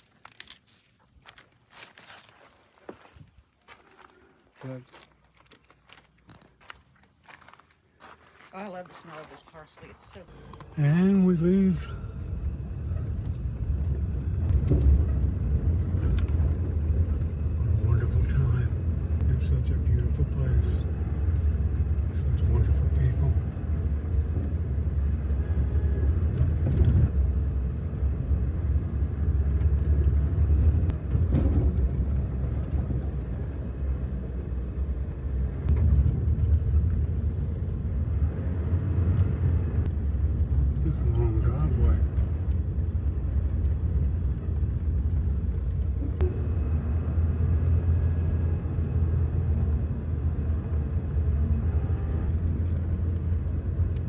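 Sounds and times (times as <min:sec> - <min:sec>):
car cabin road rumble: 0:09.6 - 0:54.0.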